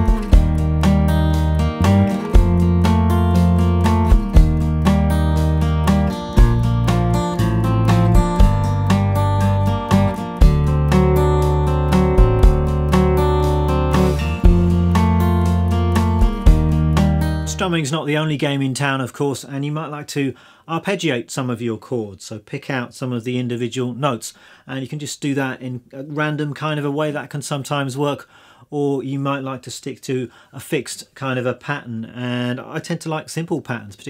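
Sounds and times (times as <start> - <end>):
deep sustained bass notes: 0.0 - 17.6
acoustic guitar arpeggios: 0.0 - 17.8.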